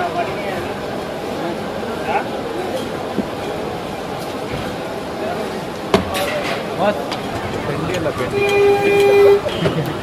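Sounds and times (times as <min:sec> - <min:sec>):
street ambience: 0:00.0 - 0:10.0.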